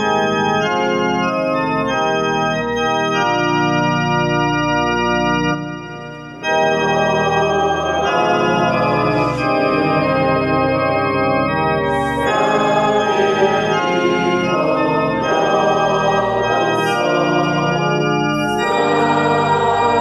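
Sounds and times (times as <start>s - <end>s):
organ playing hymn chords: 0.0s - 20.0s.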